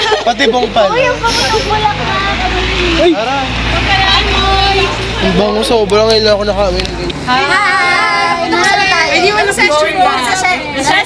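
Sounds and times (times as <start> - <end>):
women calling out sing-song: 7.3 - 11.0.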